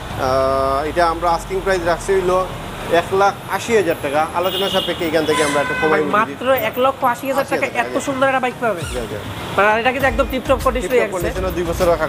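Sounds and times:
street traffic hum: 0:00.0 - 0:12.0
man speaking: 0:00.2 - 0:06.6, 0:08.8 - 0:12.0.

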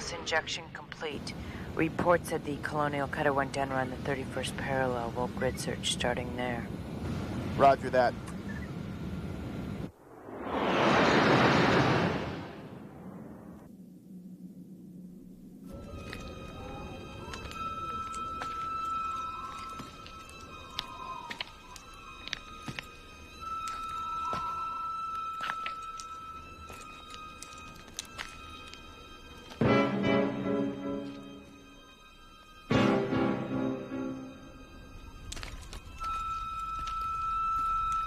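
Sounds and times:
loud whoosh: 0:09.9 - 0:13.7
eerie sustained music: 0:14.0 - 0:38.0.

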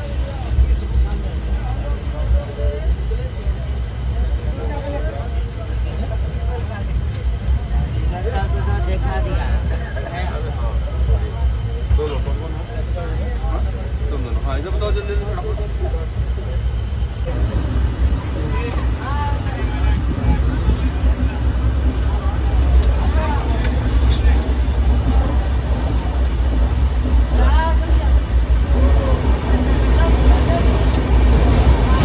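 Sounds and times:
passengers talking: 0:00.0 - 0:32.0
train carriage rumbling: 0:00.0 - 0:32.0.

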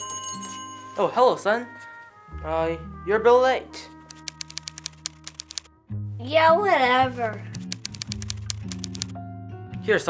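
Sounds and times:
typewriter key clacks: 0:04.1 - 0:05.7, 0:07.6 - 0:09.1.

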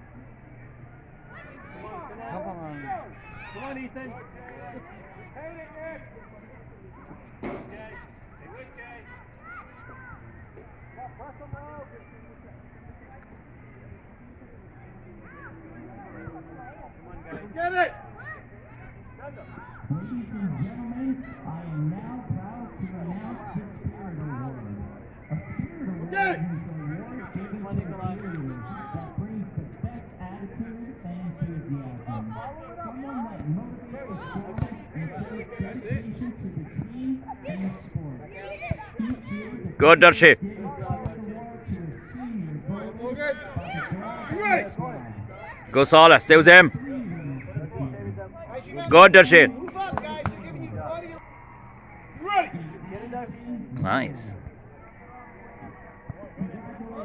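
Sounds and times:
outdoor background noise: 0:00.0 - 0:57.0
distant people shouting: 0:00.5 - 0:12.7, 0:38.4 - 0:40.4, 0:45.4 - 0:47.9, 0:48.5 - 0:52.6
sharp thump: 0:07.4 - 0:07.8
people calling out: 0:39.0 - 0:40.4, 0:45.7 - 0:46.7, 0:48.8 - 0:49.5.

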